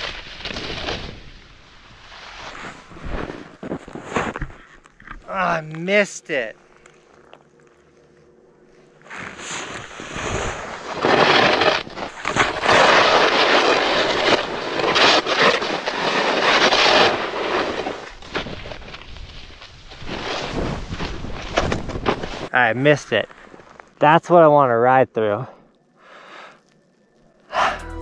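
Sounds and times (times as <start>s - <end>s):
snowboard scraping through snow: 0.0s - 4.6s, 9.1s - 22.6s.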